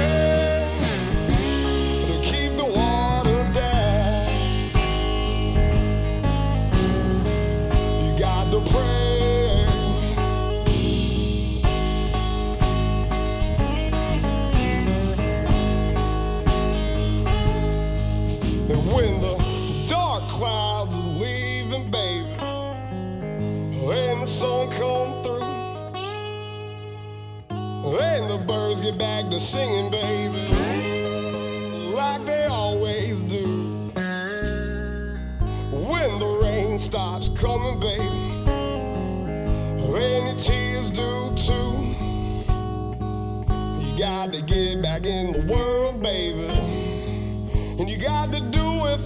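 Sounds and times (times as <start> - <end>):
man singing: 0.0 - 5.7, 6.7 - 10.9, 18.5 - 22.6, 23.6 - 26.0, 27.8 - 34.6, 35.5 - 42.9, 43.6 - 49.0
drums: 0.0 - 21.6, 29.6 - 49.0
guitar notes: 0.0 - 49.0.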